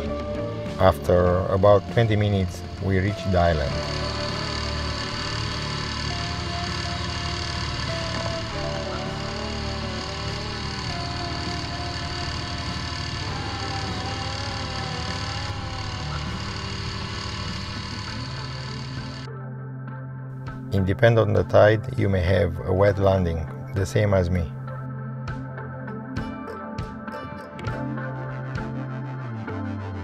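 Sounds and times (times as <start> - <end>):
outboard motor running: 0.0 - 19.3.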